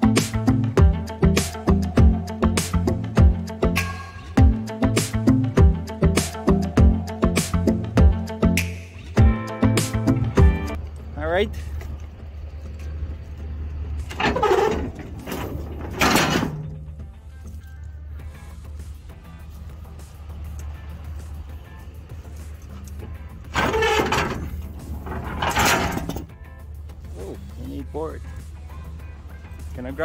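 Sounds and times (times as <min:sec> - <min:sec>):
heavy truck engine idling: 0:09.6 - 0:29.8.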